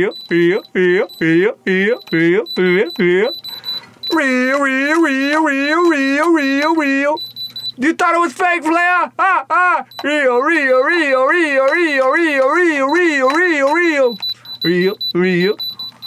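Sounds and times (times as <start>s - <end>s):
man chanting: 0.0s - 3.4s, 4.0s - 7.2s, 7.8s - 15.6s
electronic tester beeping: 0.0s - 8.0s, 9.8s - 16.0s.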